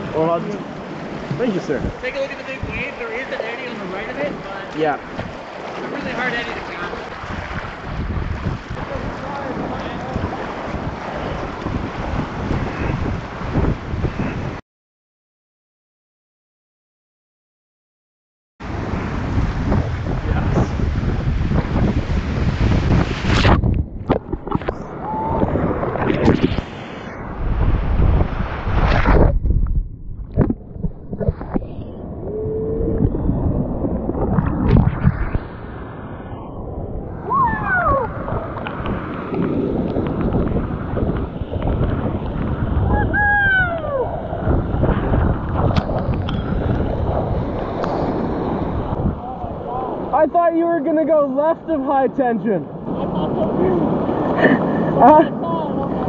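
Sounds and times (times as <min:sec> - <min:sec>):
wind buffeting microphone: 0:00.0 - 0:14.6, 0:18.6 - 0:56.0.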